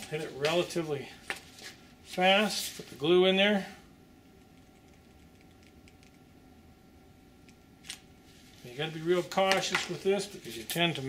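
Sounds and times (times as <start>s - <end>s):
faint room hum: 0.0s - 11.0s.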